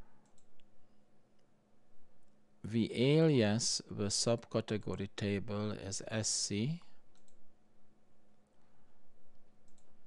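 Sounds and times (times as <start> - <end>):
faint low hum: 0.0 - 10.0
computer mouse clicks: 0.2 - 0.7, 7.1 - 7.4, 9.6 - 10.0.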